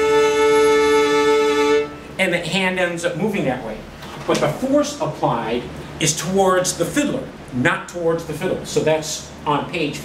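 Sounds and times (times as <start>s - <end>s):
fiddle long bowed note: 0.0s - 2.1s.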